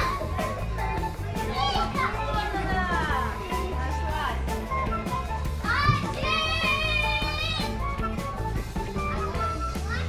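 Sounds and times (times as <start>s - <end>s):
children calling and squealing: 0.0s - 3.8s, 4.6s - 10.0s
background music with bass line: 0.0s - 10.0s.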